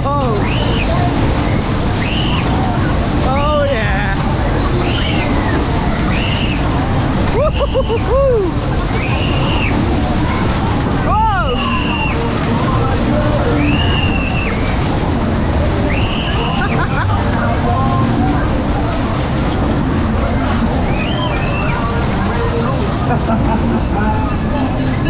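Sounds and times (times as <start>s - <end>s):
fairground ride rumble: 0.0s - 25.0s
riders screaming and whooping: 0.4s - 3.6s, 4.7s - 15.0s, 15.6s - 18.1s, 20.6s - 24.6s.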